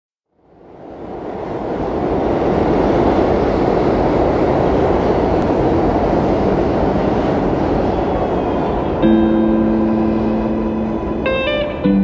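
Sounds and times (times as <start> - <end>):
subway train running: 0.3 - 12.0.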